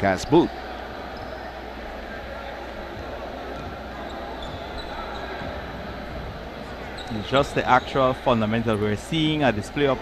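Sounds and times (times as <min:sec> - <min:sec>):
gymnasium hall noise: 0:00.0 - 0:10.0
voices in gymnasium: 0:00.0 - 0:10.0.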